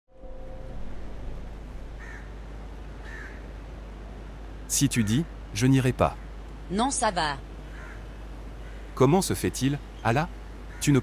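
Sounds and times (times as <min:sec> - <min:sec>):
outdoor background hiss: 0:00.1 - 0:11.0
bird calling: 0:01.9 - 0:02.4, 0:03.0 - 0:03.5, 0:07.6 - 0:11.0.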